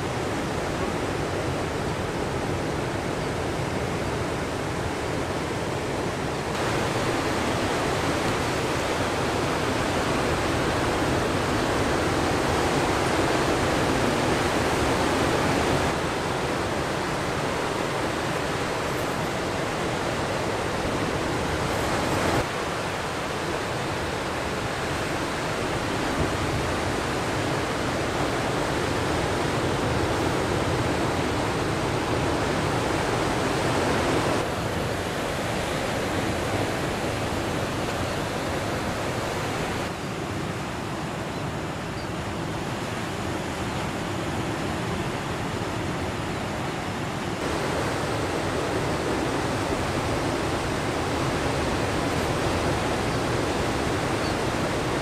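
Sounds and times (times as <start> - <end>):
ocean surf breaking on shore: 0.0 - 55.0.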